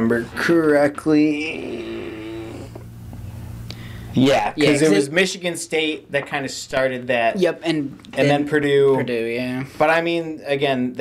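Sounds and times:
man humming: 0:01.3 - 0:02.9.

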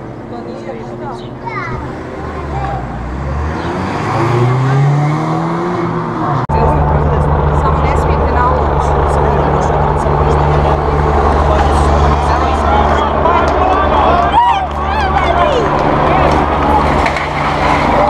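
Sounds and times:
people talking: 0:00.3 - 0:05.1, 0:06.1 - 0:18.0
car accelerating past: 0:01.5 - 0:18.0
low drone: 0:02.0 - 0:18.0.

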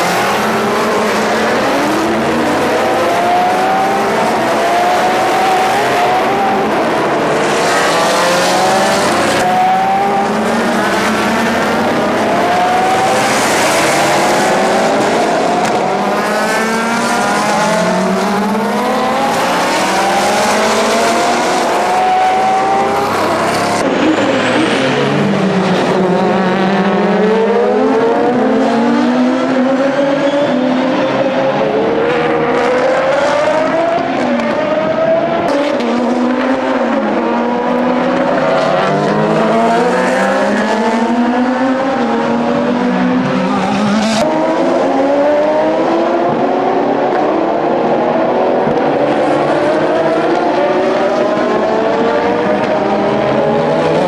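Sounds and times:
race cars passing at speed: 0:00.0 - 0:54.0.

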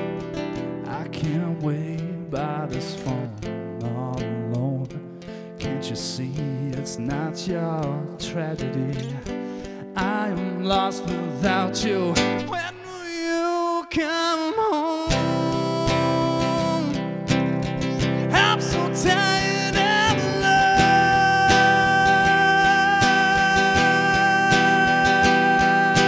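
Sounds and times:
acoustic guitar strumming: 0:00.0 - 0:26.0
man singing a sad ballad: 0:00.7 - 0:26.0.

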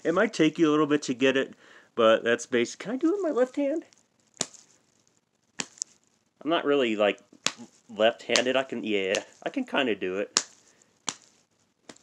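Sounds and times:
hand smacking open palm: 0:04.4 - 0:04.6, 0:05.6 - 0:05.9, 0:07.4 - 0:08.5, 0:10.4 - 0:11.3.

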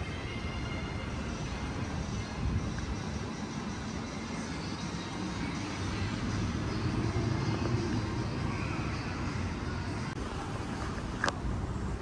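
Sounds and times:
low city rumble: 0:00.0 - 0:12.0.

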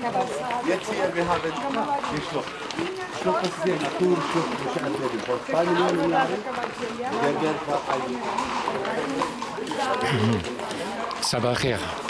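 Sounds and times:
footsteps crunching on gravel: 0:00.0 - 0:12.0
people talking: 0:00.0 - 0:12.0.

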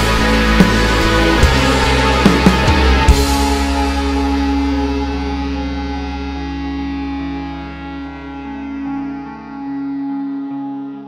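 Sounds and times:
electric guitar picking single notes: 0:00.0 - 0:11.0
low sustained note: 0:00.0 - 0:11.0.

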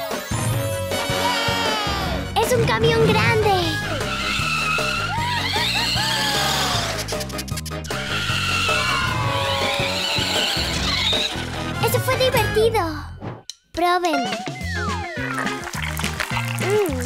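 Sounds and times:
upbeat background music: 0:00.0 - 0:17.0
toy monster truck driving: 0:08.1 - 0:11.8.

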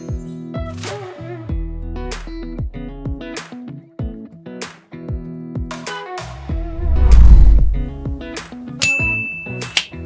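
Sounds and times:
bright ding: 0:08.8 - 0:10.0.

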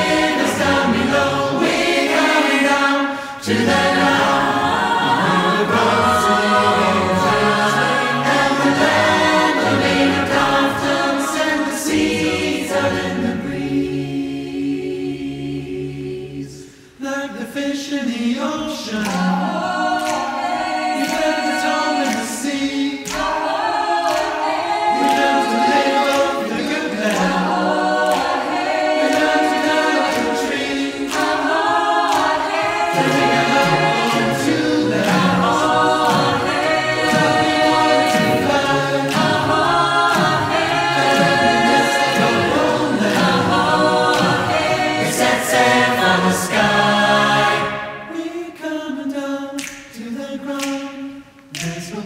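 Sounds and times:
mixed choir singing a cappella: 0:00.0 - 0:52.0
vocal percussion hits: 0:18.1 - 0:52.0.

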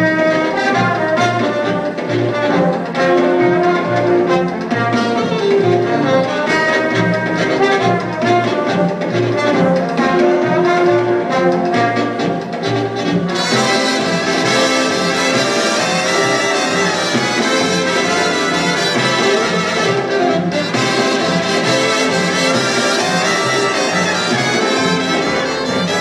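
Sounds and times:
big band swing music: 0:00.0 - 0:26.0.

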